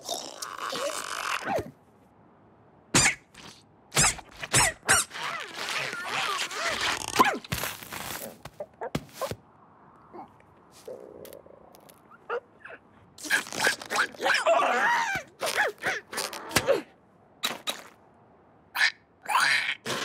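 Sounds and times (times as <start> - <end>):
cartoon squeaks and thuds: 2.9 - 9.4.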